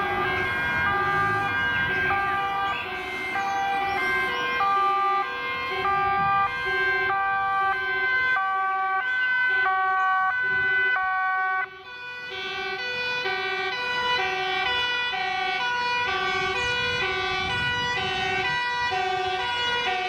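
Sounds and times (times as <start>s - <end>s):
two-tone emergency sirens: 0.0s - 20.0s.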